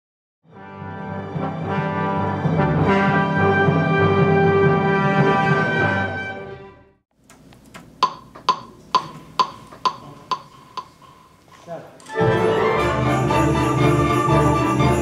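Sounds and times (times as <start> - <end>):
brass passage: 0.4 - 7.0, 12.1 - 15.0
full orchestra playing: 0.5 - 6.9, 12.1 - 15.0.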